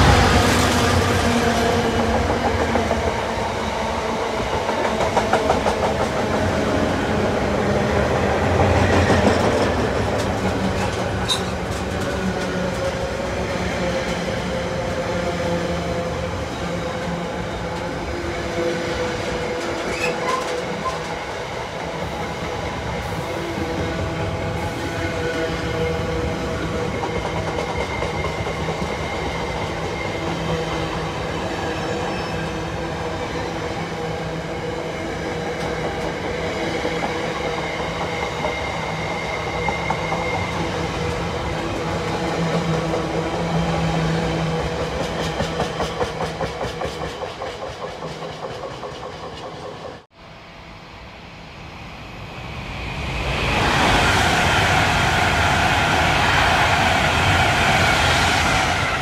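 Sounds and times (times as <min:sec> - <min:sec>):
train wheels rumbling on rails: 0:00.0 - 0:50.2, 0:51.5 - 0:59.0
clickety-clack over rail joints: 0:04.4 - 0:06.6, 0:08.5 - 0:13.2, 0:19.2 - 0:21.2, 0:26.7 - 0:30.6, 0:35.4 - 0:43.6, 0:44.2 - 0:50.0.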